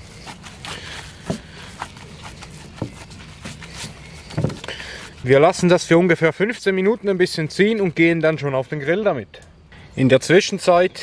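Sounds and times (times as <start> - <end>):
raw meat squelching: 0.0 - 5.4
disposable gloves rustling: 0.0 - 5.8.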